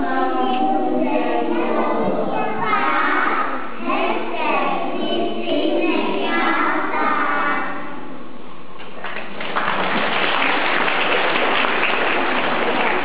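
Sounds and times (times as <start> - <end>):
children singing: 0.0 - 8.2
audience applauding: 8.8 - 13.0.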